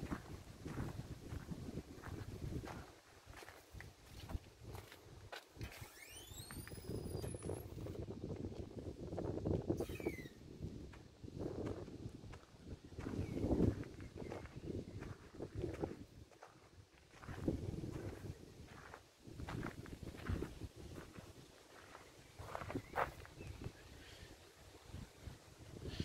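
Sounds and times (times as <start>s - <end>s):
high squeal: 5.7s - 7.7s, 9.8s - 10.4s.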